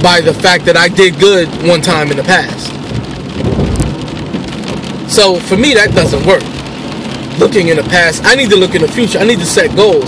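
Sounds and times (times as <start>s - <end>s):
rain and wet road hiss: 0.0s - 10.0s
low rumble: 0.8s - 8.0s.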